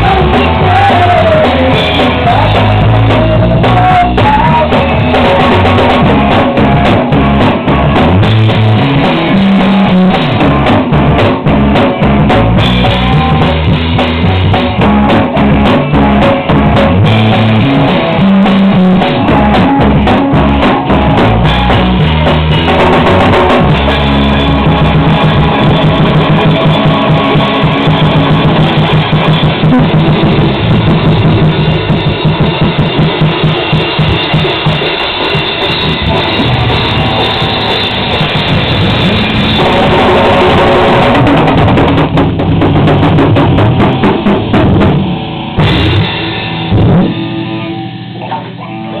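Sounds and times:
band accented hits: 0:00.0 - 0:49.0
rock band playing live: 0:00.0 - 0:49.0.

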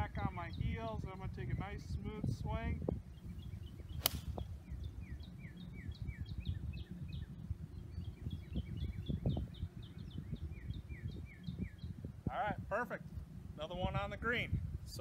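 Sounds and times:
wind rumble on microphone: 0:00.0 - 0:15.0
bird chirping: 0:03.0 - 0:12.0
golf club striking ball: 0:04.0 - 0:04.4.

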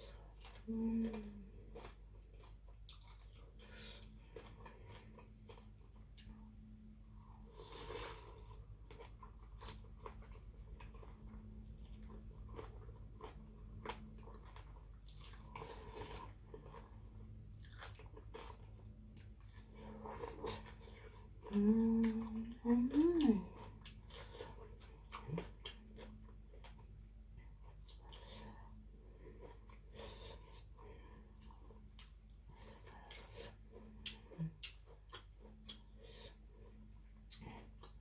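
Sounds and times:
close chewing and crunching: 0:00.0 - 0:38.0.

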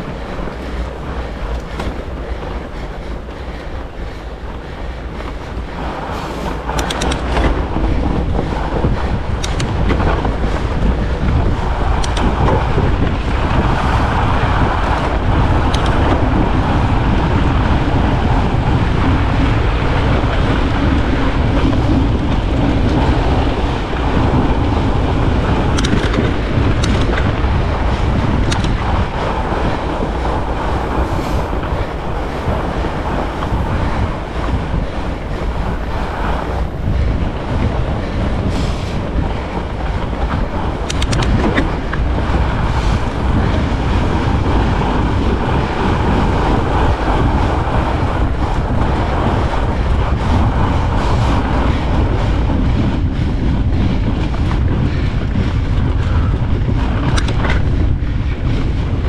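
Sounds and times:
wind rush on microphone: 0:00.0 - 0:59.0
sharp clicks: 0:06.7 - 0:07.5, 0:09.4 - 0:09.8, 0:15.7 - 0:16.0, 0:25.8 - 0:27.2, 0:40.8 - 0:41.7.

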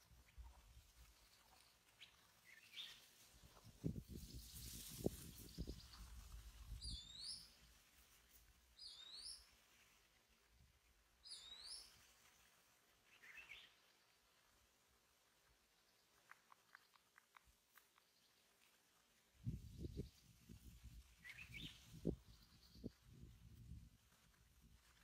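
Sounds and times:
rustle: 0:00.0 - 0:25.0.

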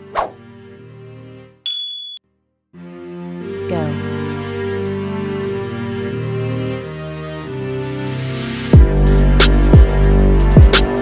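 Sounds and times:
bright ringing chime: 0:01.7 - 0:02.2
soft background music: 0:02.8 - 0:09.0.

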